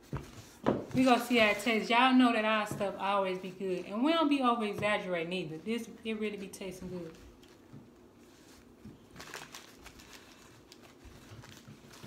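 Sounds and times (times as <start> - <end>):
paper wrapper rustling: 7.0 - 12.0.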